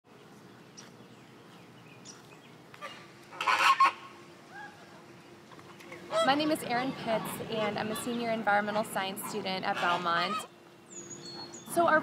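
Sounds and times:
flamingos honking: 2.8 - 10.6.

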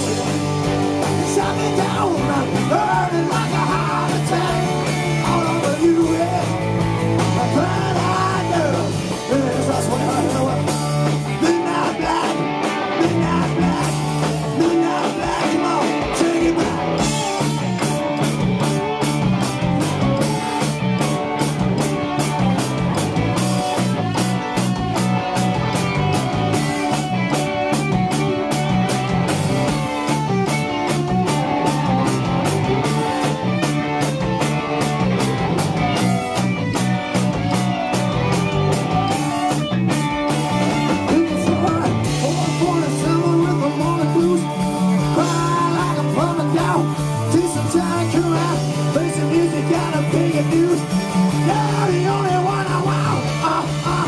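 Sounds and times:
drums beating: 0.0 - 54.0
live rock band playing: 0.0 - 54.0.

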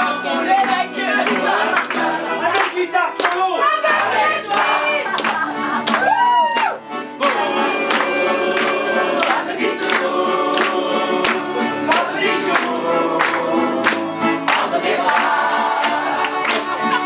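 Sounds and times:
man singing: 0.0 - 1.2
crowd singing along: 0.0 - 2.8, 3.5 - 5.8, 7.2 - 17.0
acoustic guitar strumming: 0.0 - 17.0.

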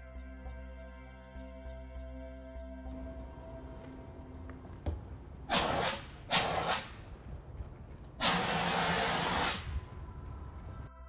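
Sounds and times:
fire extinguisher hissing: 3.0 - 10.9.

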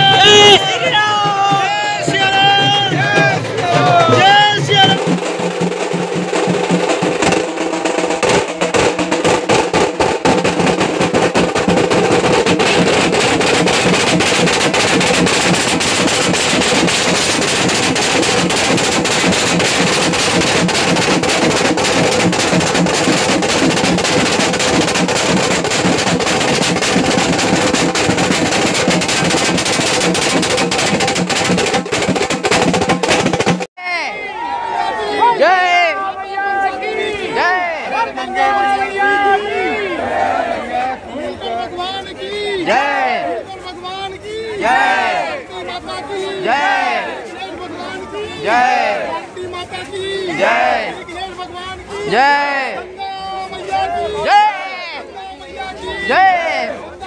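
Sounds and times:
dhol drums beaten fast: 0.0 - 33.7
crowd voices: 0.0 - 57.0.

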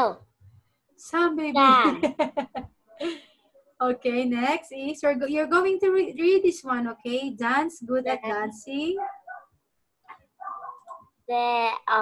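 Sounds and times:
child reading aloud over video call: 0.0 - 0.4, 11.1 - 12.0.

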